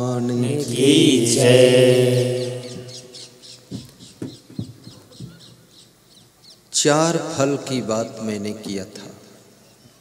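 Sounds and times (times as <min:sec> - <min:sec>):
small birds chirping: 0:02.1 - 0:06.8, 0:09.5 - 0:10.0.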